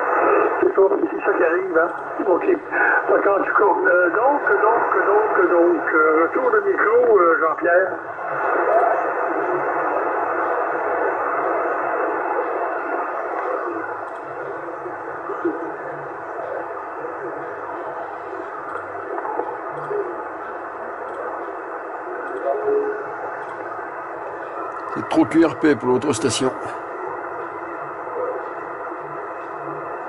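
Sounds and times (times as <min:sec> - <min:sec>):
radio static hiss: 0:00.0 - 0:30.0
weak voice over radio: 0:24.9 - 0:26.8.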